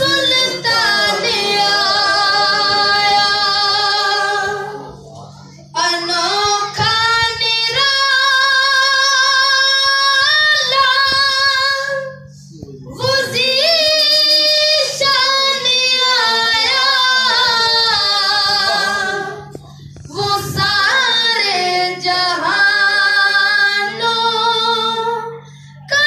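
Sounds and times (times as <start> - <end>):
low steady drone tone: 0.0 - 26.0.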